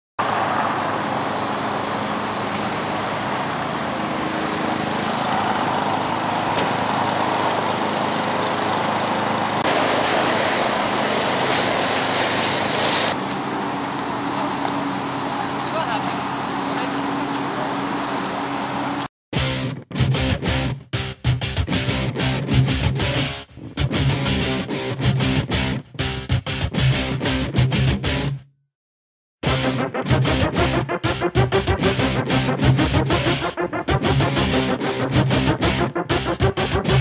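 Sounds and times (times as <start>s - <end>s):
road traffic noise: 0.2s - 19.1s.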